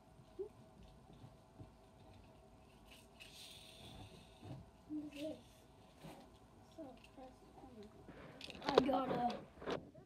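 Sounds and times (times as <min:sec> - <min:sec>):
plastic toy clicks and rustles: 0:06.8 - 0:09.8.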